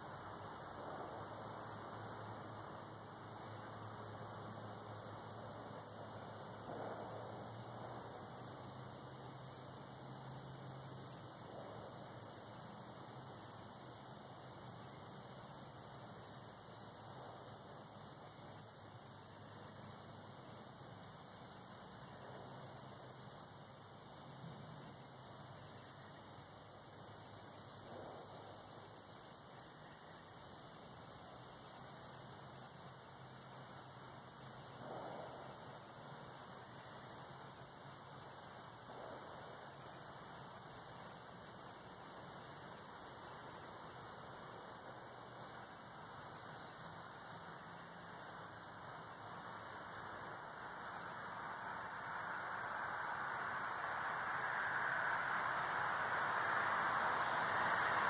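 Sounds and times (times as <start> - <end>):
insects trilling: 0.0 - 58.0.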